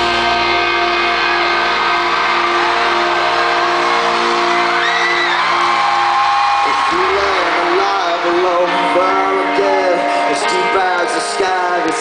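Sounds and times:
fans whooping and screaming: 0.0s - 10.0s
live rock band playing: 0.0s - 12.0s.

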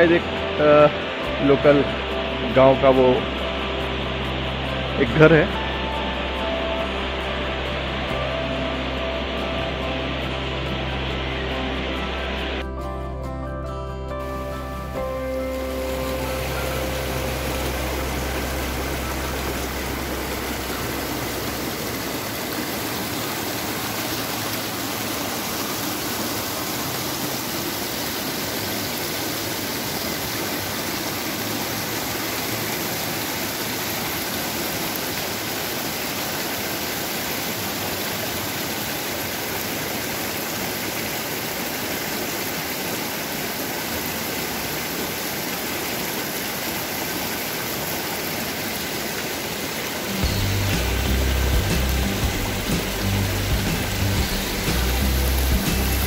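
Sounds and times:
river water rushing: 0.0s - 12.6s, 14.2s - 56.0s
background music: 0.0s - 35.5s, 50.0s - 56.0s.

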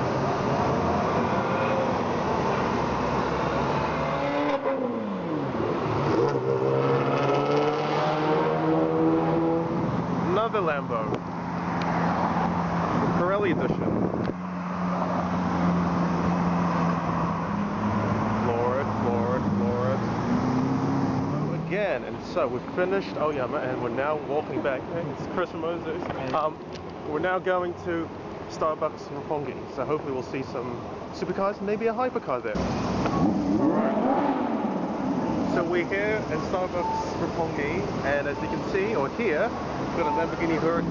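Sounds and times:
car engine revving: 0.0s - 24.0s, 32.6s - 40.9s
street traffic: 0.0s - 40.9s.

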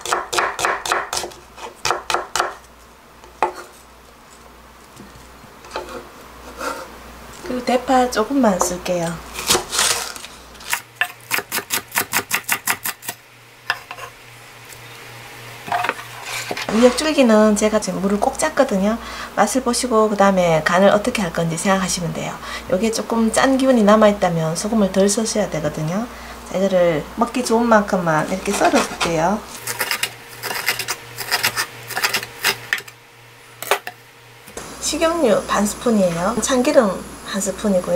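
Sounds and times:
knife chopping on wooden board: 0.0s - 2.6s, 3.4s - 3.7s.

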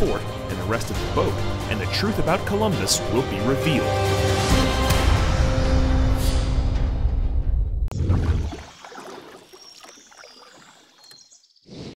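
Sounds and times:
swishing water-like noise: 7.9s - 11.2s.

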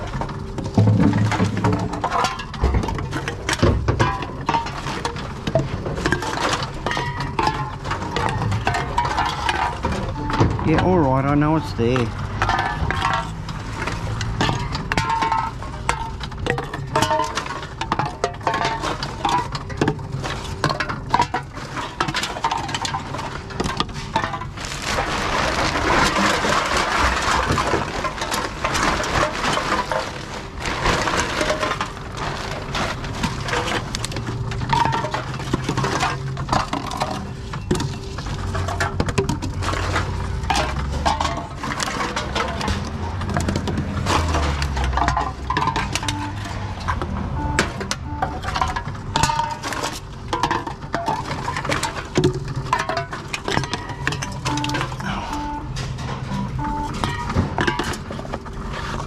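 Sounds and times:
aluminium cans clattering: 0.0s - 59.0s.

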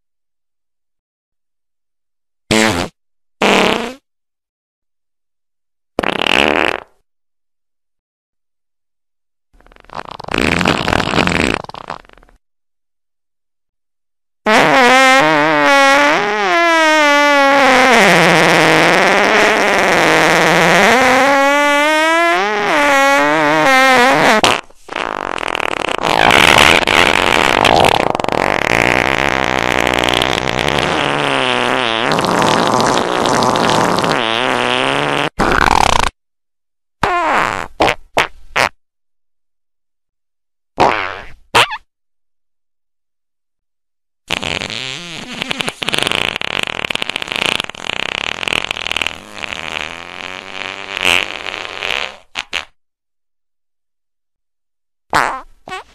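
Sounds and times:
fart sounds: 2.5s - 4.1s, 6.0s - 7.0s, 9.6s - 12.4s, 14.4s - 36.2s, 37.0s - 38.8s, 40.8s - 41.9s, 44.3s - 52.8s, 55.1s - 55.9s.

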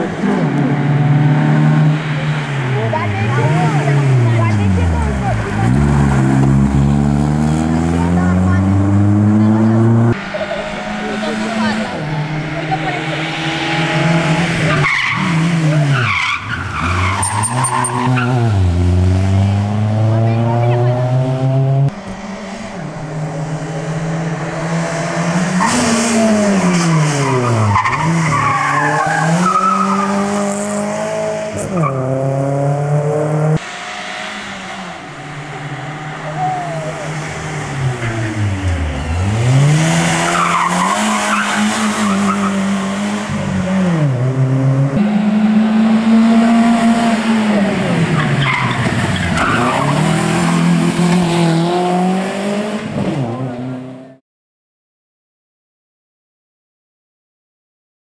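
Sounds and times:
racing car engines revving: 0.0s - 54.2s.

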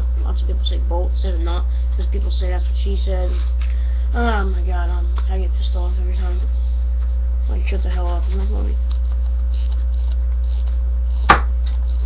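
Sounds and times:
low electrical hum: 0.0s - 12.0s
sharp knock: 11.3s - 11.5s.

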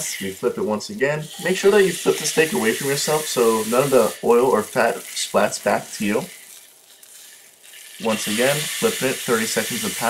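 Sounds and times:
steak sizzling in a skillet: 0.0s - 10.0s.

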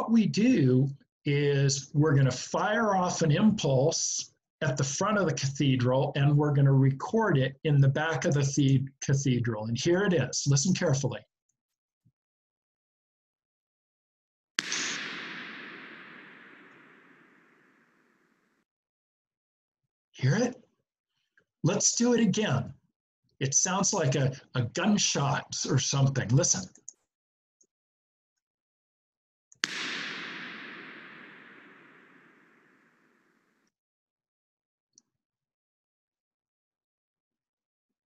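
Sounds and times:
sharp bang: 14.6s - 18.0s
sharp bang with reverberant tail: 14.6s - 18.4s, 29.6s - 33.5s.

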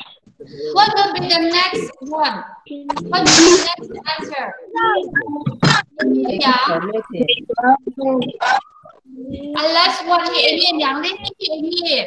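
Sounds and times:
children calling out over video call: 0.0s - 12.0s.

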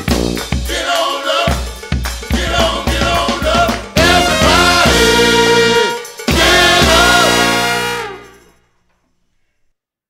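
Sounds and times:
brass band final chord: 4.0s - 8.6s.

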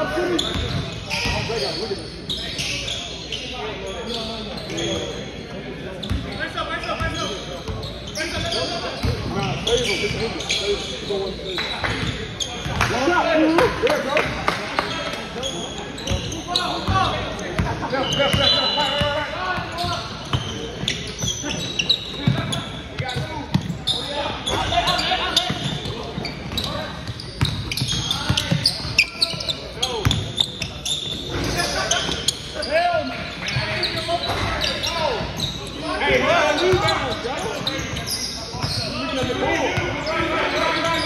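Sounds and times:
players shouting and chatting: 0.0s - 41.0s.

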